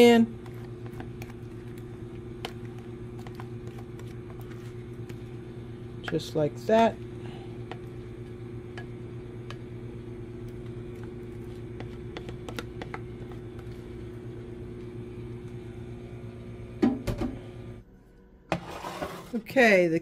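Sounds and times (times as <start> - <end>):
microwave oven humming: 0.0 - 20.0.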